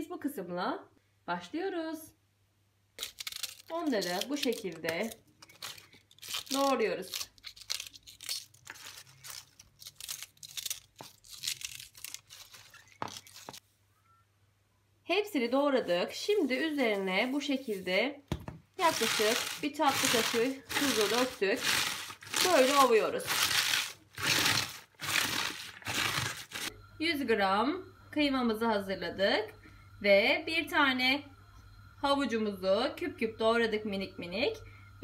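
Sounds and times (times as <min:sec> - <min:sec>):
cabbage crunching and crackling: 0:03.0 - 0:13.6, 0:18.8 - 0:26.7
knife cutting crisp cabbage: 0:18.8 - 0:26.7.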